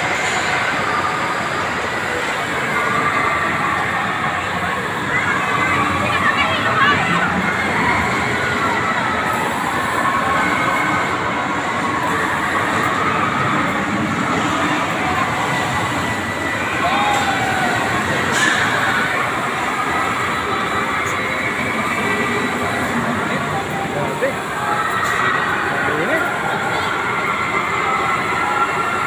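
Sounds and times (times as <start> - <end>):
amusement ride mechanical rumble: 0.0 - 29.0.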